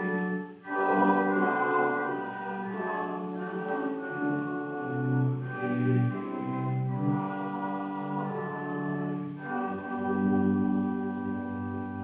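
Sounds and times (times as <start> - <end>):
hymn played on organ: 0.0 - 12.0
voices singing: 0.0 - 12.0.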